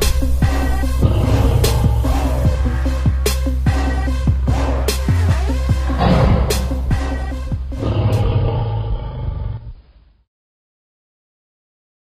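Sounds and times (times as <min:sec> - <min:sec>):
big cat roaring: 0:00.6 - 0:03.1, 0:04.5 - 0:09.8.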